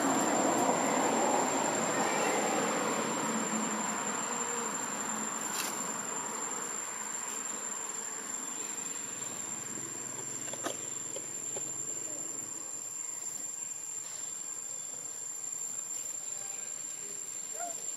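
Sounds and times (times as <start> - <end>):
high-pitched insect drone: 0.0 - 14.9.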